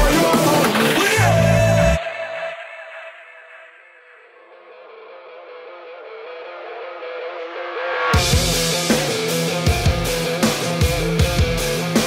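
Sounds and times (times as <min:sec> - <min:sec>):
band playing a song: 0:00.0 - 0:01.8, 0:08.2 - 0:12.0.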